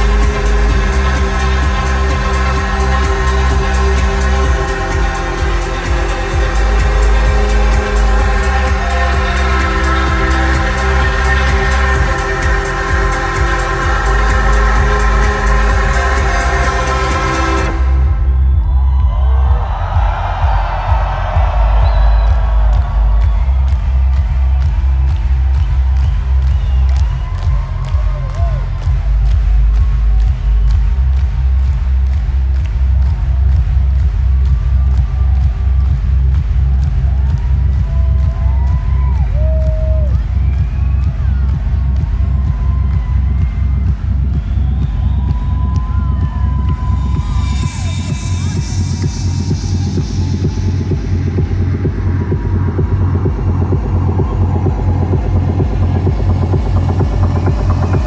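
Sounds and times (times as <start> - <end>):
crowd cheering: 0.0 - 58.0
electronic dance music: 0.0 - 58.0
crowd whoops: 18.2 - 29.0, 37.0 - 50.7.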